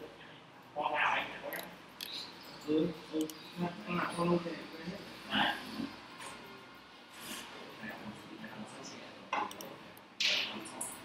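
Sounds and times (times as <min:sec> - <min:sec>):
low indistinct speech: 0:00.0 - 0:11.0.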